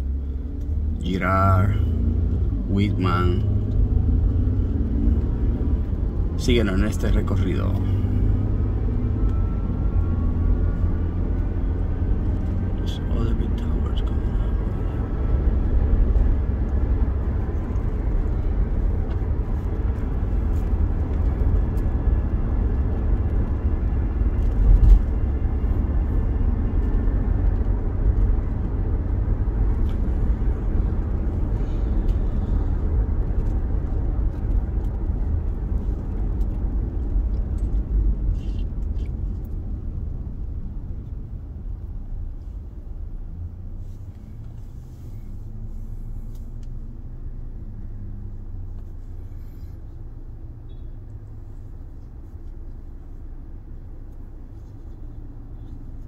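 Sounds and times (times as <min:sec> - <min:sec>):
car cabin road and engine rumble: 0:00.0 - 0:56.0.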